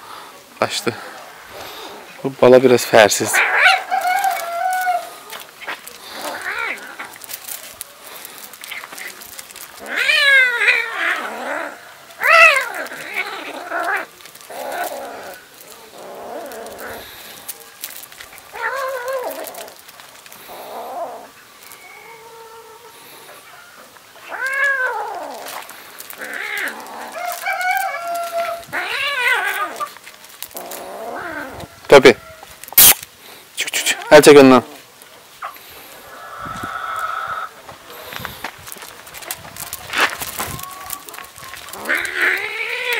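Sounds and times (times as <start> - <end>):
kitten meowing and yowling: 3.4 - 5.1, 9.8 - 15.4, 18.5 - 19.8, 24.3 - 25.5, 26.2 - 29.9
sharp loud clicks: 32.7 - 33.1.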